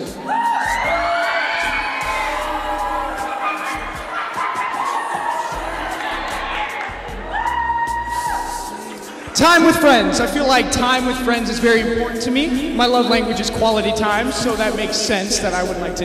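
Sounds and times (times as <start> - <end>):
audience whooping and cheering: 0.0 - 11.4
music with deep bass: 0.0 - 16.0.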